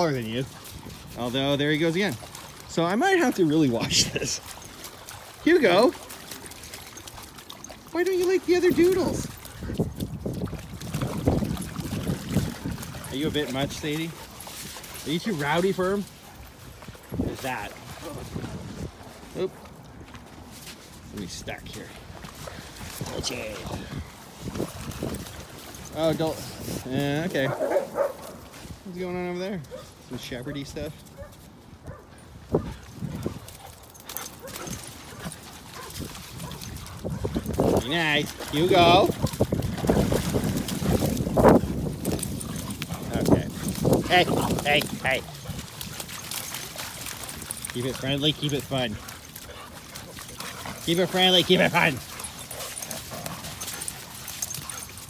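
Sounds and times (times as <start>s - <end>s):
dogs splashing through shallow water: 0.0s - 55.0s.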